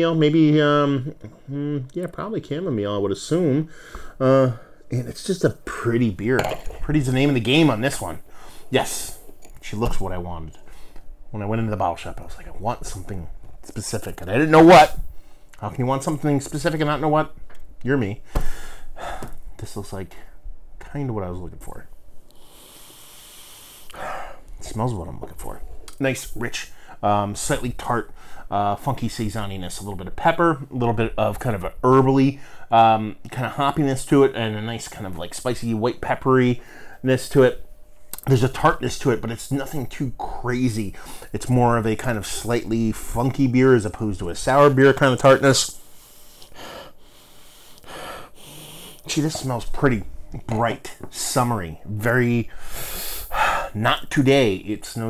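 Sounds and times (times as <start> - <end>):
person sniffing through the nose: 22.4 - 24.3, 45.8 - 49.1, 52.6 - 53.7.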